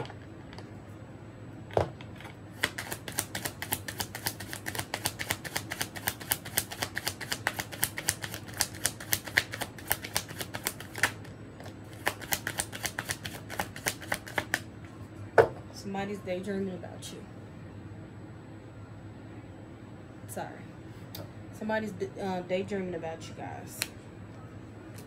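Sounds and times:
cards being shuffled: 2.2 - 14.6.

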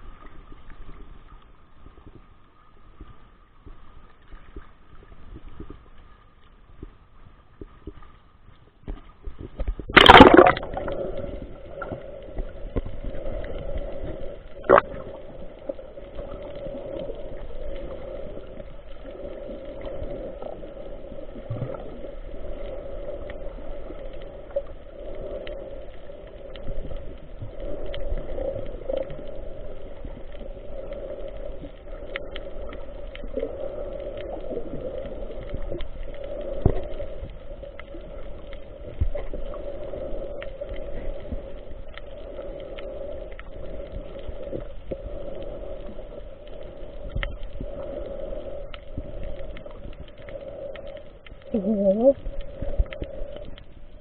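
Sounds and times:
muffled underwater wash: 0.0 - 54.0
faint clicks: 10.7 - 54.0.

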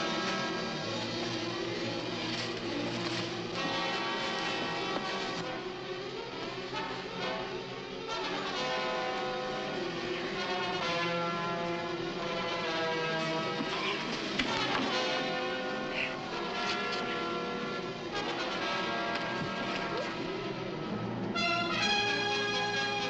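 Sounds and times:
orchestral music with brass: 0.0 - 23.0.

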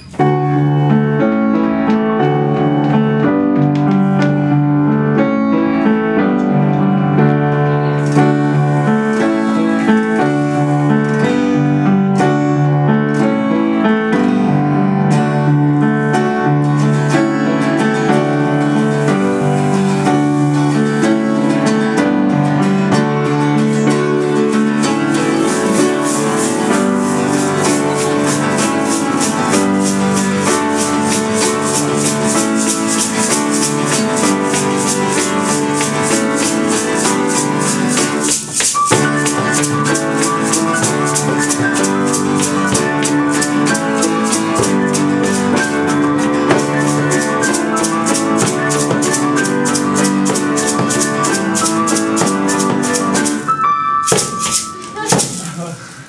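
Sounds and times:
strummed acoustic guitar: 0.0 - 53.6
upright piano: 0.0 - 56.0
metal shaker rhythm: 8.0 - 11.3, 16.7 - 21.8, 22.4 - 55.7.

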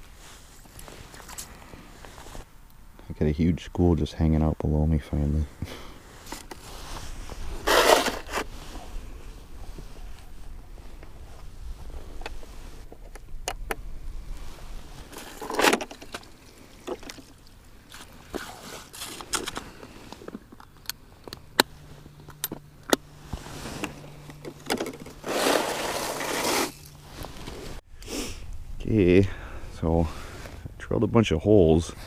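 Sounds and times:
rustling: 0.0 - 2.5, 5.9 - 13.4, 14.0 - 20.8, 21.4 - 28.6.

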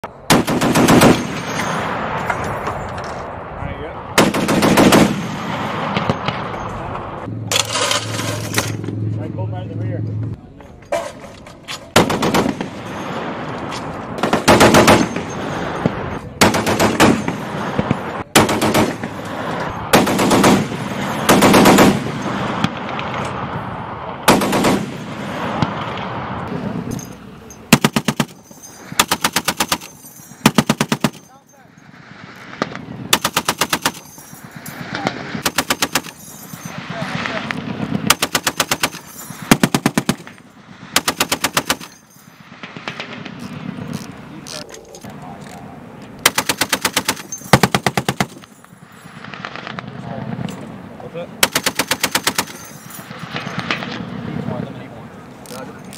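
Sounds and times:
heavy machine gun bursts: 0.3 - 1.9, 4.2 - 6.4, 14.2 - 15.6, 19.9 - 23.0, 24.3 - 25.1, 27.7 - 31.3, 33.1 - 42.0, 46.2 - 48.5, 51.4 - 52.7.

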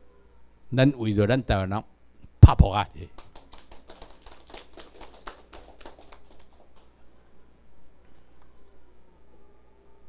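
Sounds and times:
light applause: 3.0 - 7.1.

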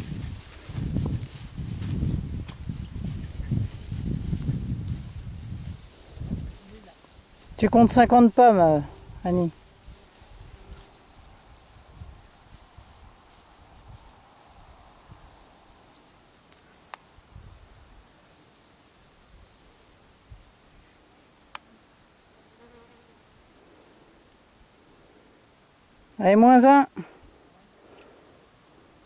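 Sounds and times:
insects buzzing and chirring: 0.0 - 29.0.

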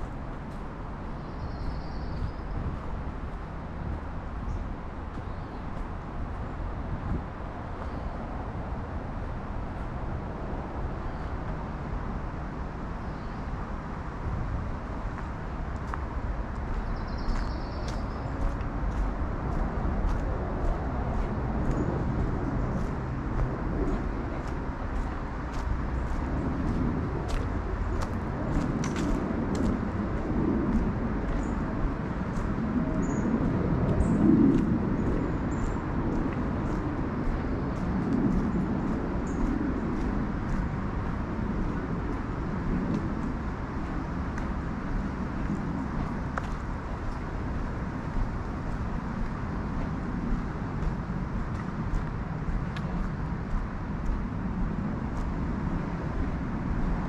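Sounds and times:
footsteps on dirt trail: 0.0 - 10.3, 15.0 - 57.0
road traffic roar: 0.0 - 57.0.

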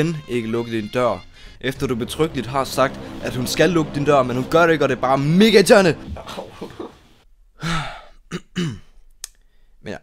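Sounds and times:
person sighing: 7.6 - 8.2.

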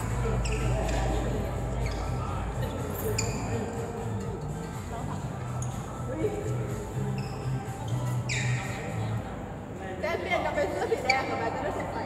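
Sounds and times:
people talking: 0.0 - 7.0
background music: 0.0 - 9.7.

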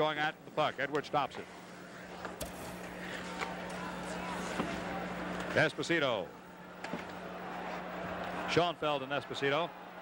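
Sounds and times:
crowd murmur: 1.8 - 5.6.

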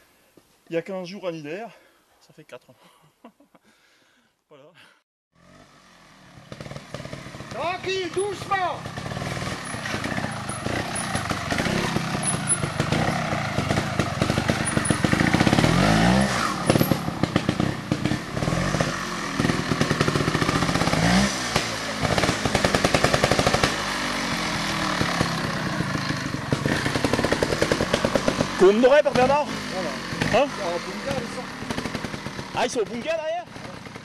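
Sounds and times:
motorcycle engine revving: 5.4 - 34.0.

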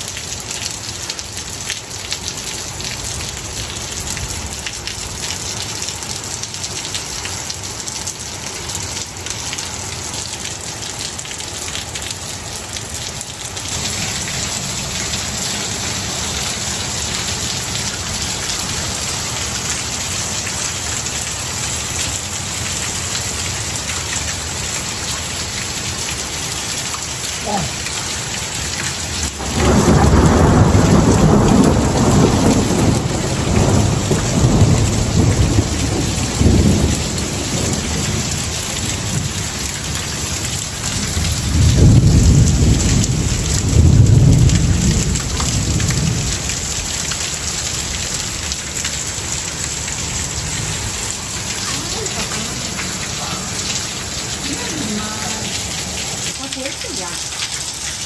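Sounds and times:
steady rain on a roof: 0.0 - 58.0
water running off roof: 0.0 - 58.0
thunder rumbling: 29.2 - 48.5, 49.1 - 56.4.

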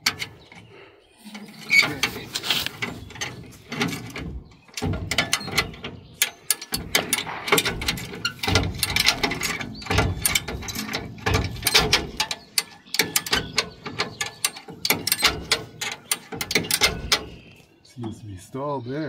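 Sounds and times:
car jack ratchet clicking: 1.7 - 17.5.

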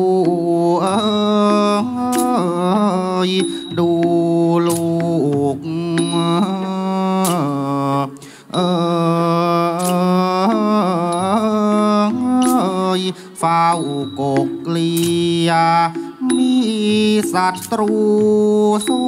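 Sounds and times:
person singing long ornamented notes: 0.0 - 19.0
sharp percussion strokes: 0.0 - 19.0.

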